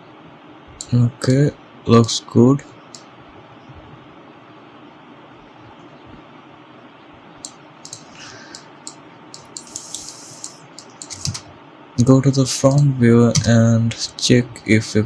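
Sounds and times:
room tone hiss: 0:00.0 - 0:15.0
computer clicks: 0:07.4 - 0:12.1.

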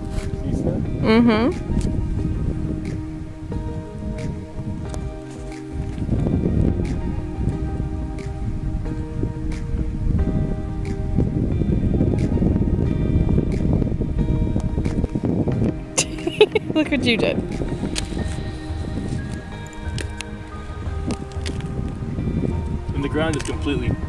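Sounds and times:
sustained chords: 0:00.0 - 0:24.0.

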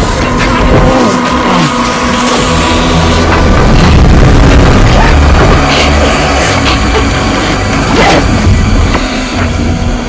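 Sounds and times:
heavy rain: 0:00.0 - 0:09.5
churning water: 0:00.0 - 0:10.0
film score held tones: 0:00.0 - 0:10.0.

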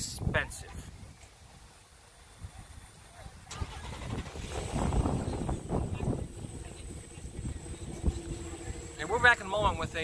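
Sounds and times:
car engine running: 0:03.6 - 0:10.0.

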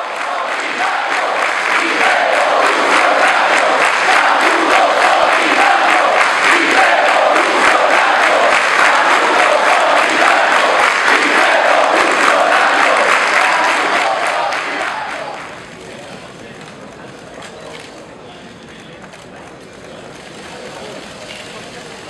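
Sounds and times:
crowd chanting and calling: 0:00.0 - 0:16.1
crowd applauding: 0:00.0 - 0:16.3.

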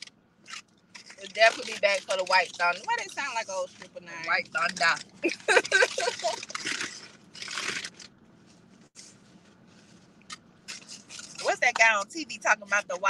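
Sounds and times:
crunchy rustle of food packaging: 0:00.0 - 0:11.6.

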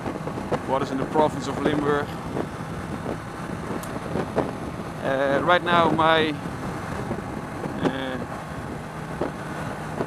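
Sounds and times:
motorcycle engine cruising: 0:00.0 - 0:10.0
wind rush on microphone: 0:00.0 - 0:10.0.

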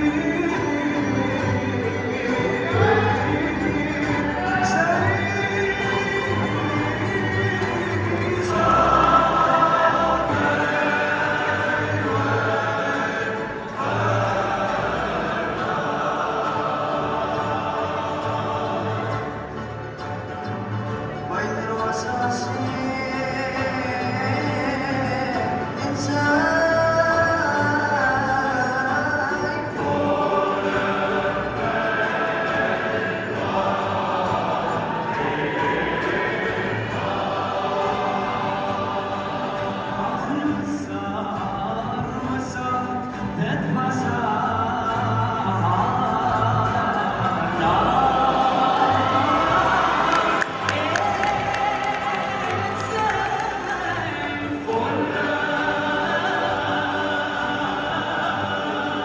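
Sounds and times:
banjo: 0:00.0 - 0:59.0
lead voice holding long notes: 0:00.0 - 0:59.0
men's choir singing: 0:00.0 - 0:59.0
strummed guitar: 0:00.0 - 0:59.0.

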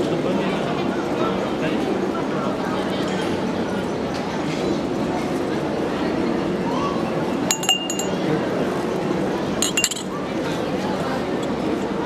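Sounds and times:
murmur of voices: 0:00.0 - 0:12.0
metal vessels clinking: 0:07.5 - 0:08.2, 0:09.6 - 0:10.1.

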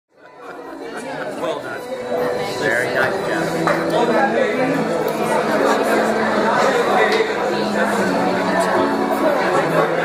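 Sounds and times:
babble of overlapping conversation: 0:00.1 - 0:10.0.

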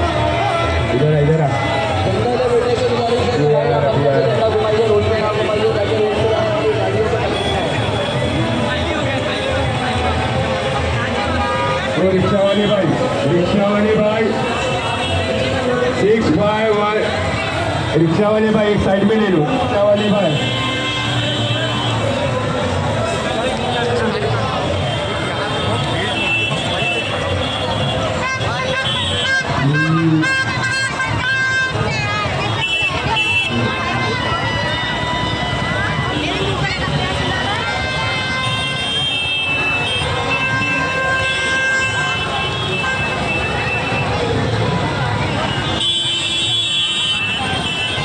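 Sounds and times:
many voices chattering: 0:00.0 - 0:48.0
traffic: 0:00.0 - 0:48.0
vehicle horns: 0:00.0 - 0:48.0.

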